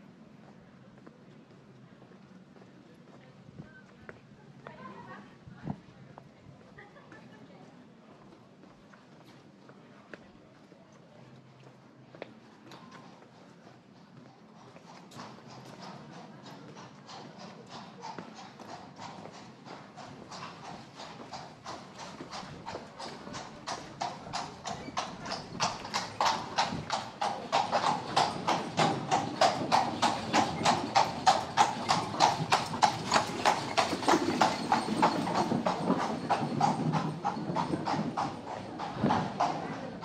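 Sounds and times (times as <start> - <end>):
horse hooves on cobblestones: 12.1 - 40.0.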